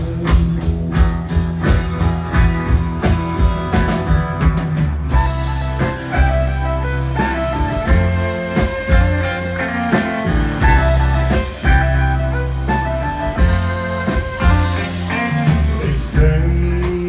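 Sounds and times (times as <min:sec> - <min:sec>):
drums: 0:00.0 - 0:17.0
electric guitar: 0:00.0 - 0:17.0
upright bass: 0:00.0 - 0:17.0.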